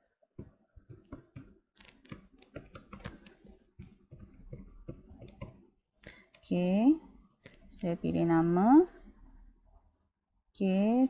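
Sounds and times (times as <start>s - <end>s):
keyboard key clicks: 0.4s - 5.6s.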